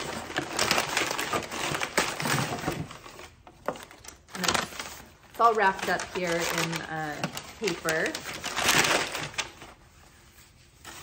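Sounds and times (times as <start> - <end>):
paper crinkling and rustling: 0.0 - 11.0.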